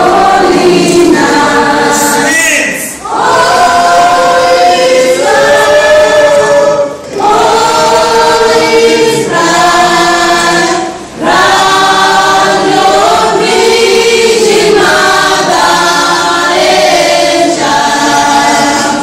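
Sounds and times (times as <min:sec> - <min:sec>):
children's choir singing: 0:00.0 - 0:19.0.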